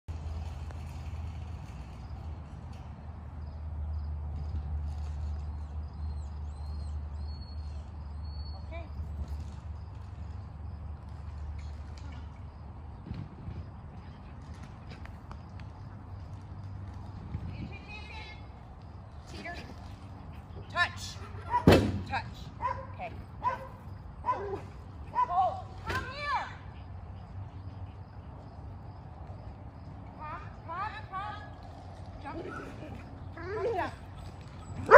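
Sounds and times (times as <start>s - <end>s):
wind rumble on microphone: 9.0s - 22.7s.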